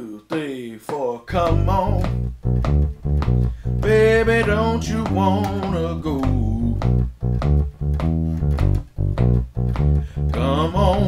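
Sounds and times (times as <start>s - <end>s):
electric bass guitar blues line: 1.3s - 11.0s.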